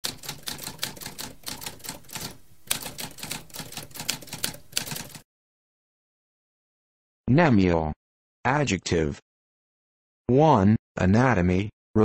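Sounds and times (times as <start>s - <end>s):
typewriter keystrokes: 0.0s - 5.2s.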